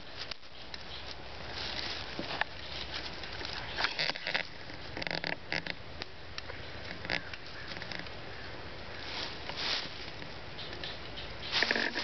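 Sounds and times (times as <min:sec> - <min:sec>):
cord and sticks rustling: 0:00.0 - 0:05.8, 0:08.8 - 0:12.0.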